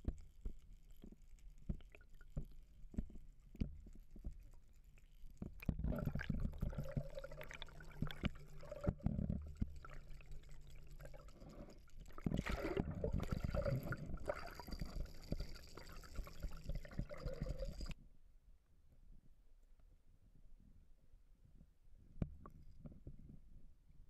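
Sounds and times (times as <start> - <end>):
water rushing and bubbling: 5.7 - 18.0.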